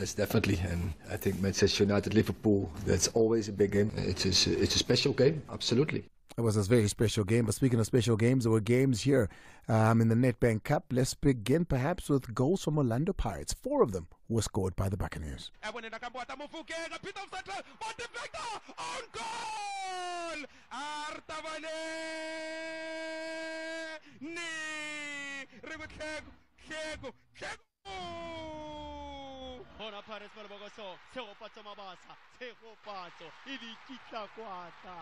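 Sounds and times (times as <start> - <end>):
fast excited commentary: 1.4 - 22.9, 24.3 - 35.0
man shouting goal call: 21.4 - 29.7.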